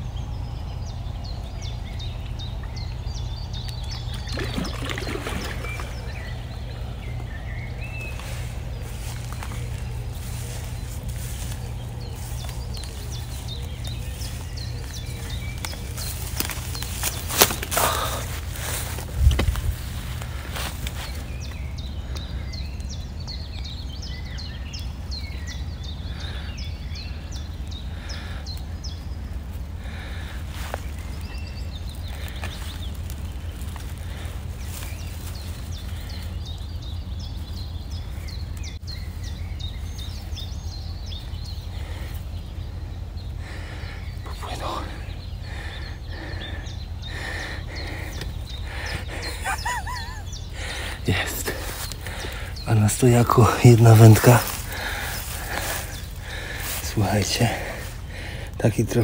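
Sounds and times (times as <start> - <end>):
small birds chirping: 0.0 - 59.0
steady low rumble: 0.0 - 59.0.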